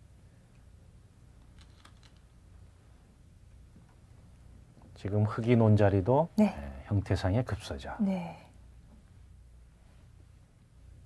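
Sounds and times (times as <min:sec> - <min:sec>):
low steady hum: 0:00.0 - 0:11.0
go stones clicking: 0:01.5 - 0:02.3.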